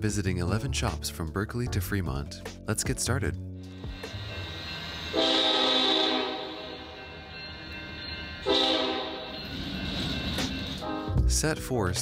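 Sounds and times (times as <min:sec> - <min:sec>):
train horn blasts: 0:05.1 - 0:07.1, 0:08.4 - 0:09.4.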